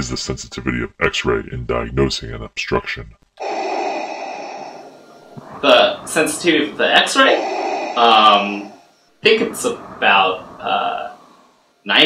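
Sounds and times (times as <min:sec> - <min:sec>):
mechanical respirator breath: 0:03.4 - 0:09.2.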